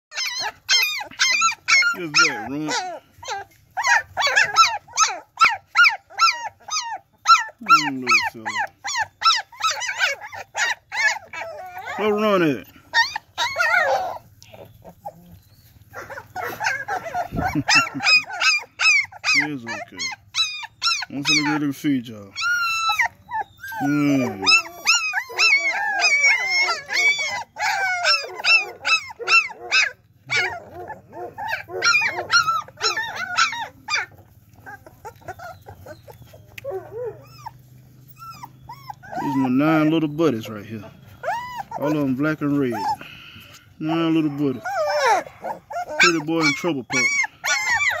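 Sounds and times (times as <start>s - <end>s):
puppies whimpering and yelping: 0.1s - 48.0s.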